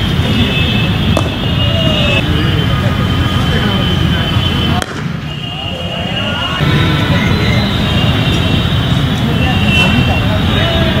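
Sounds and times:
distant voices: 0:00.0 - 0:11.0.

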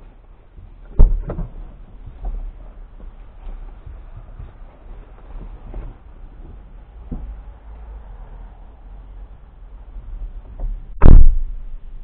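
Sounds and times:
dull knocks: 0:00.9 - 0:02.4.

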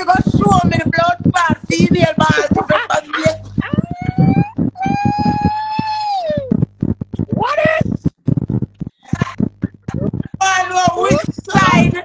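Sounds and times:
person shrieking: 0:03.6 - 0:06.6.

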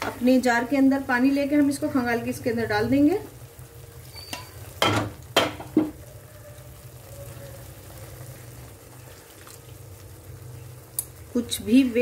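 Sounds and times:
gravy sizzling in a pan: 0:00.0 - 0:12.0.

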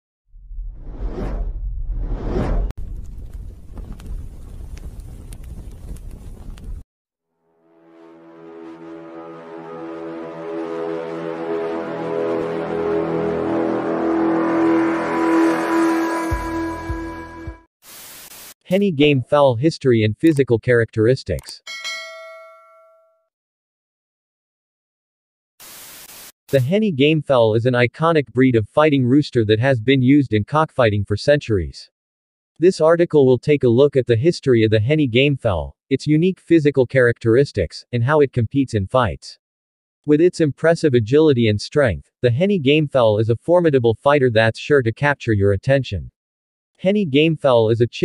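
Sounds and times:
whoosh sound effect: 0:00.6 - 0:02.7
bell-like chime: 0:15.6 - 0:17.6, 0:21.7 - 0:23.3.

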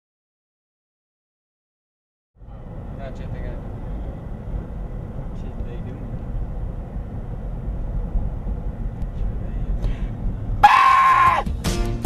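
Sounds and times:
car cabin road noise: 0:02.4 - 0:11.8
loud music: 0:11.1 - 0:12.0.

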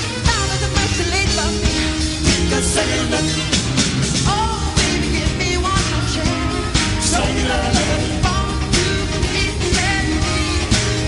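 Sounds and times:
lead singer: 0:00.0 - 0:11.0
live band playing pop-soul: 0:00.0 - 0:11.0.

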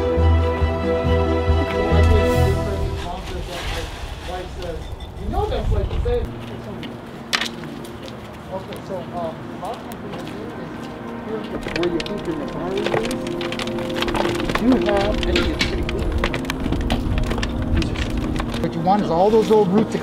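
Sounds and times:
background music: 0:00.0 - 0:04.2, 0:05.6 - 0:20.0
indistinct talking: 0:00.2 - 0:20.0.

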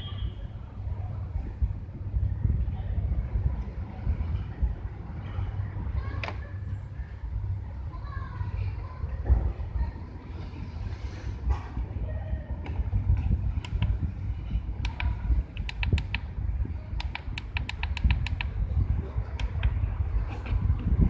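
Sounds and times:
steady low rumble: 0:00.0 - 0:21.0
keypad press ticks: 0:14.8 - 0:16.2, 0:17.0 - 0:18.5.

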